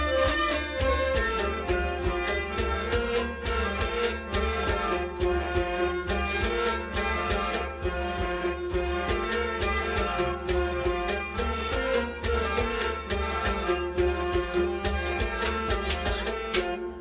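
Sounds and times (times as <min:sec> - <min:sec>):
clay-pot drum beat: 0:00.0 - 0:16.8
bowed sarangi: 0:00.0 - 0:17.0
harmonium: 0:00.0 - 0:17.0.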